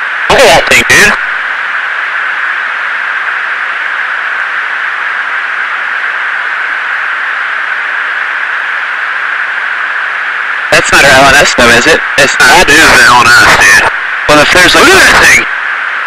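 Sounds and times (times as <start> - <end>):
intercom hiss: 0.0 - 16.0.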